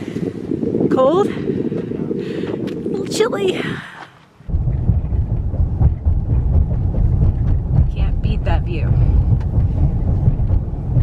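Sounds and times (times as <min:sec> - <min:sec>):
road and engine rumble in cabin: 0:04.5 - 0:11.0.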